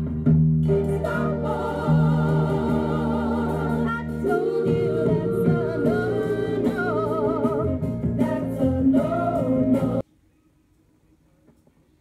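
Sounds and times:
singing over bass line from record: 0:00.0 - 0:10.0.

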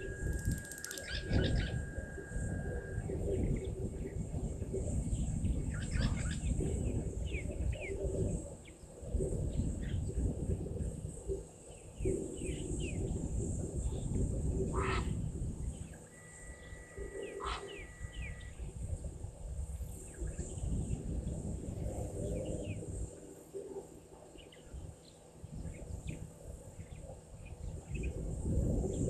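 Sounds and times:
thin steady whistle: 0:00.0 - 0:05.0, 0:16.0 - 0:18.8
low rumble: 0:00.0 - 0:07.4
birds chirping: 0:00.0 - 0:09.0, 0:15.7 - 0:18.7
high insect drone: 0:00.0 - 0:29.0.

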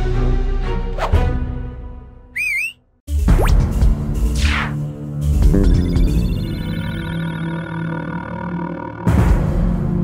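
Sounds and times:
background music: 0:00.0 - 0:02.4, 0:03.1 - 0:10.0
warbling cartoon whistle: 0:02.4 - 0:02.8.

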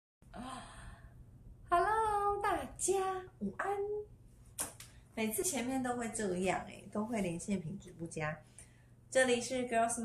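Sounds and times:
woman's breathy sigh: 0:00.3 - 0:01.1
woman speaking: 0:01.7 - 0:04.1, 0:05.2 - 0:08.5, 0:09.1 - 0:10.0.

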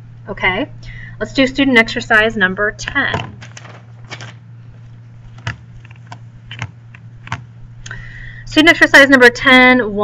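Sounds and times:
low electrical hum: 0:00.0 - 0:10.0
clicks and taps on desk: 0:05.4 - 0:07.5.

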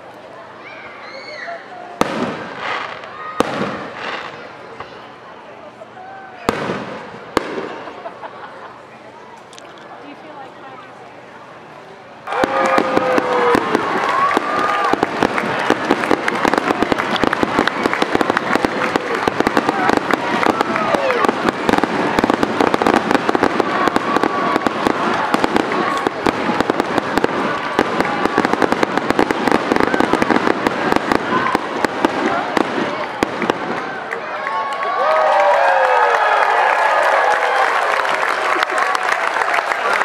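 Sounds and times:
fireworks bangs and crackles: 0:02.0 - 0:05.0, 0:06.4 - 0:08.2, 0:12.2 - 0:34.1.

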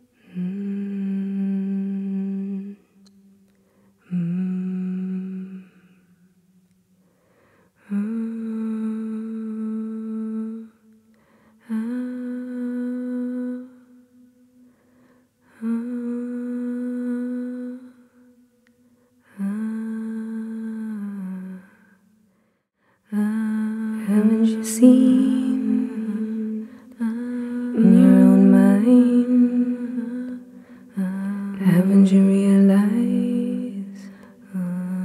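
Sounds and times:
person humming long notes: 0:23.2 - 0:35.0.

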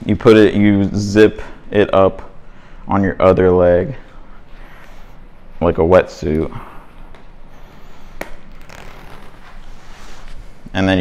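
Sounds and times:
wetsuit rubbing and rustling: 0:07.5 - 0:10.8.

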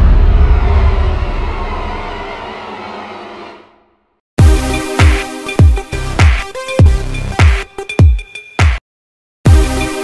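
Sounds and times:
deep cinematic boom rumble: 0:00.0 - 0:03.9.

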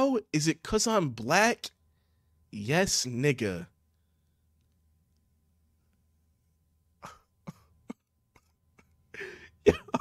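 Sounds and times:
man laughing through nose: 0:07.0 - 0:10.0.

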